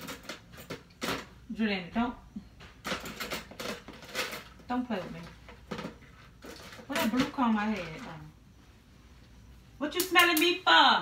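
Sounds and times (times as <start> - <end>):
woman speaking: 1.5 - 2.3, 4.7 - 5.4, 6.9 - 8.4, 9.8 - 11.0.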